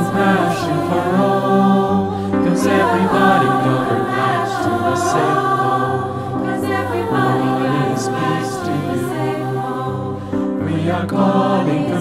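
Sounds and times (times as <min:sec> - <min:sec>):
mixed choir singing chords: 0:00.0 - 0:12.0.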